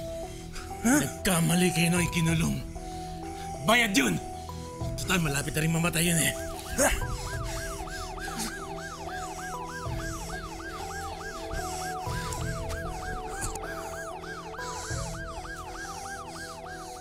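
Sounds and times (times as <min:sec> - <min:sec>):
sustained low chords: 0:06.3 - 0:17.0
siren-like wail: 0:06.4 - 0:17.0.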